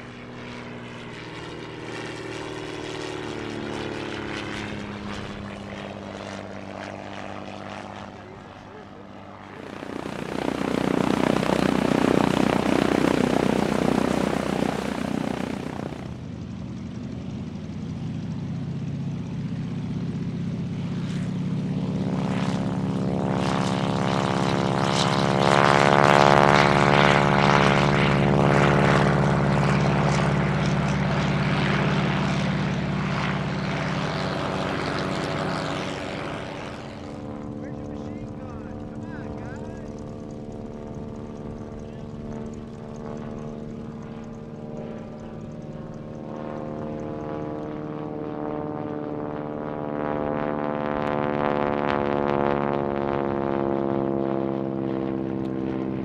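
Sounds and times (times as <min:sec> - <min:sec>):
propeller aircraft flying past: 0:00.0 - 0:56.0
propeller aircraft taking off: 0:00.0 - 0:56.0.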